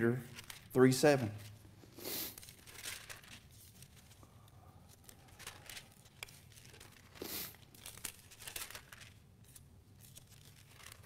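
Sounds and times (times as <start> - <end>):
thin pages rustling: 0.2 - 4.3, 4.9 - 11.0.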